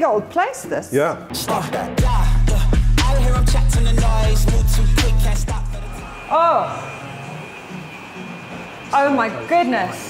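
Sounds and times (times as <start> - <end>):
air-handling plant humming: 1.6 - 10.0
thin high whine: 2.3 - 10.0.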